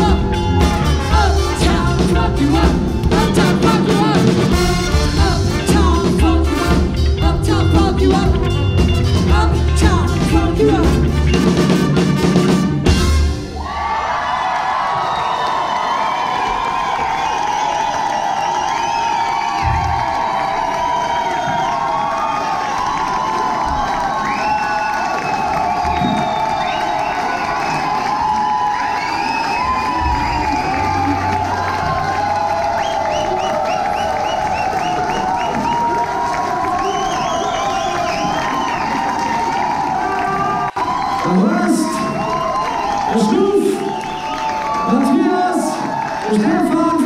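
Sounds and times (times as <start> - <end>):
audience cheering and shouting: 0.0 - 47.0
high whoops: 13.6 - 46.5
clapping: 14.4 - 47.0.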